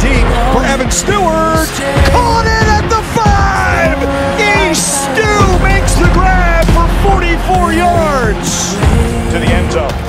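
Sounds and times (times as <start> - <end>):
loud music with deep bass: 0.0 - 10.0.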